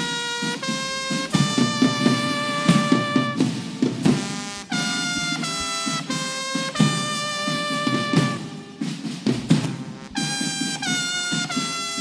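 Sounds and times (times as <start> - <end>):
drum beats: 0.0 - 12.0
trumpets holding long notes: 0.0 - 12.0.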